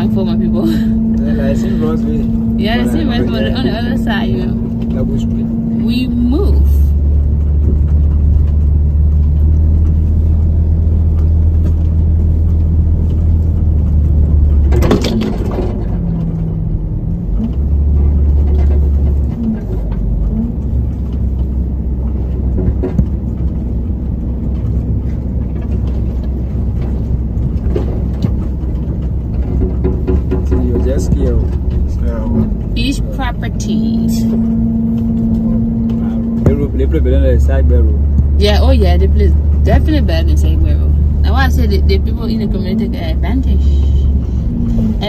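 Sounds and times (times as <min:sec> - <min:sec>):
car engine and road rumble: 0:00.0 - 0:45.0.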